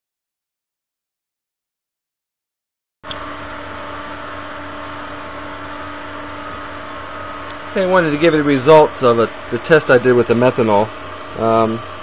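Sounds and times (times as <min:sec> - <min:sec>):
electrical hum and hiss: 0:03.0 - 0:12.0
held electrical tones: 0:03.1 - 0:12.0.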